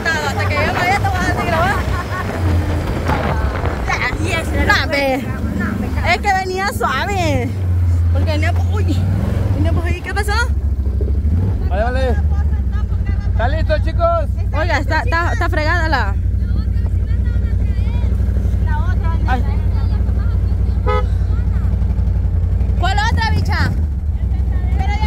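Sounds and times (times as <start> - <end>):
voices and laughter: 0.0 - 10.6, 11.4 - 25.0
truck engine and tyres rumbling: 0.0 - 25.0.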